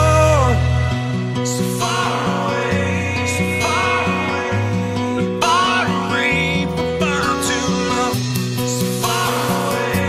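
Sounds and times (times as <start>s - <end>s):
person singing: 0.0s - 10.0s
strummed acoustic guitar: 0.0s - 10.0s.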